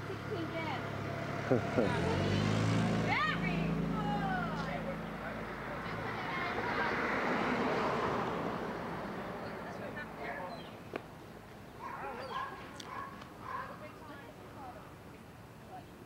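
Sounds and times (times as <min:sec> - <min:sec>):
car passing by: 0:00.3 - 0:10.8.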